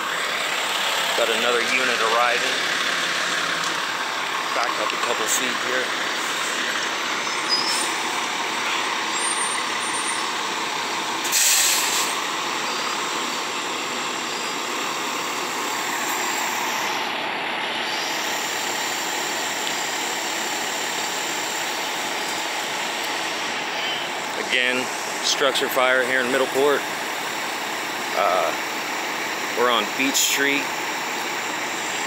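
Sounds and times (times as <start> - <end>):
fire engines rumbling: 0.0 - 32.0
burst of hiss: 11.2 - 12.2.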